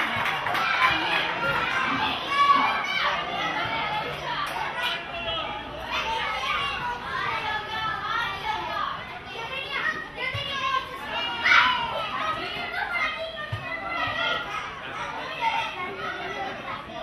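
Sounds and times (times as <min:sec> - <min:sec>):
children shouting: 0:00.0 - 0:17.0.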